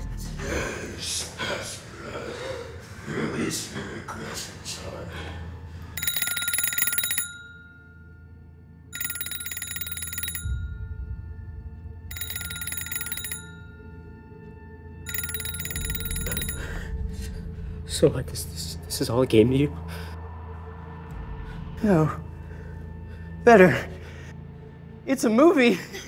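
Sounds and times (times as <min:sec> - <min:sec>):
telephone bell ringing: 0:05.9 - 0:08.3, 0:08.9 - 0:11.1, 0:12.1 - 0:14.2, 0:15.0 - 0:16.9.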